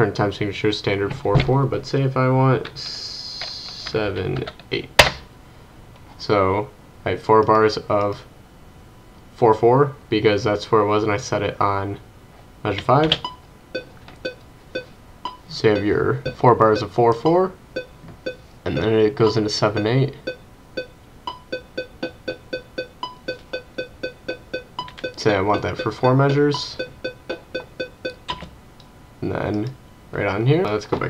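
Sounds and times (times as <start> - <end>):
metronome electronic beeps: 13.2 - 17.0, 17.8 - 28.5.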